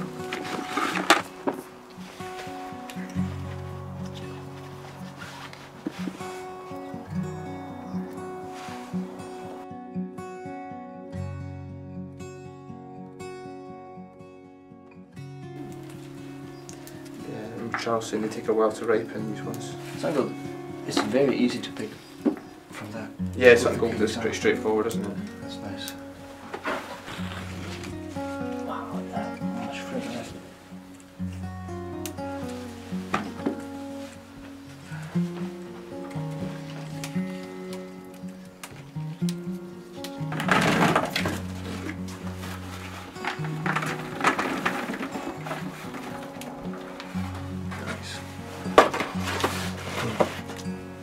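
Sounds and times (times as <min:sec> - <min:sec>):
rustling: 0:00.0 - 0:09.6, 0:15.6 - 0:51.0
background music with held notes: 0:00.0 - 0:51.0.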